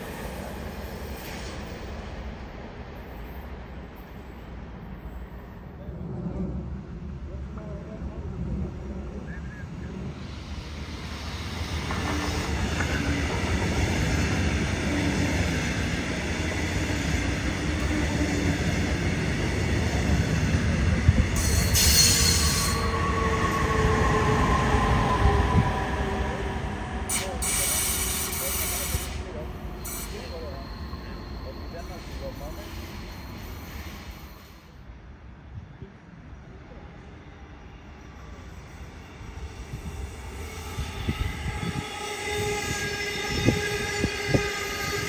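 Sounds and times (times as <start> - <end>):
train wheels rumbling on track: 0.0 - 35.0, 36.4 - 45.0
locomotive whine: 9.3 - 34.4, 37.6 - 45.0.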